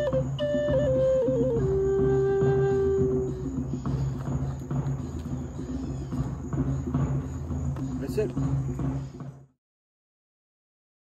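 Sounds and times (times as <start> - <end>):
hand drums beating: 0.0 - 9.5.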